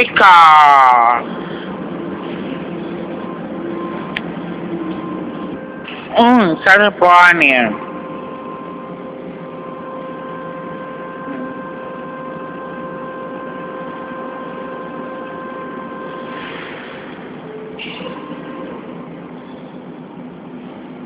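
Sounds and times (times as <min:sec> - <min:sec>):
train electrical whine: 0:00.0 - 0:21.0.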